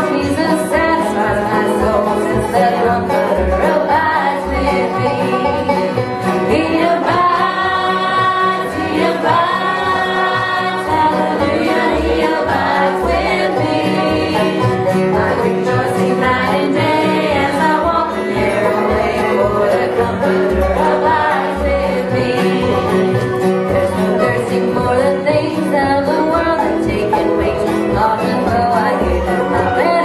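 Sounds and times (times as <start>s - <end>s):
voices singing a hymn: 0.0s - 23.1s
acoustic guitars: 0.0s - 30.0s
banjo: 0.0s - 30.0s.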